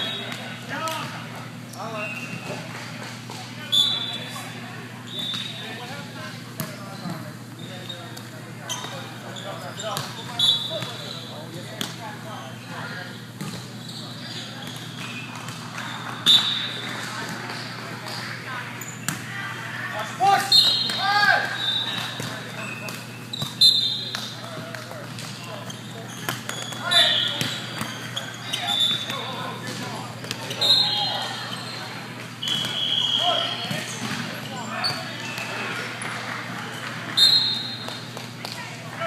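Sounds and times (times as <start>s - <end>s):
sneakers squeaking on floor: 1.8s - 2.7s, 3.7s - 5.9s, 6.6s - 18.2s, 20.4s - 38.4s
players shouting: 19.2s - 22.2s
volleyball slaps and bounces: 20.7s - 25.6s, 26.2s - 27.9s, 29.0s - 30.6s, 33.4s - 34.4s, 37.8s - 38.6s.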